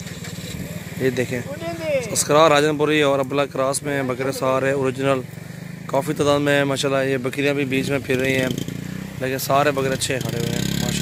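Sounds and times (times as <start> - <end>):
man talking: 1.0 - 5.3, 5.9 - 8.6, 9.2 - 11.0.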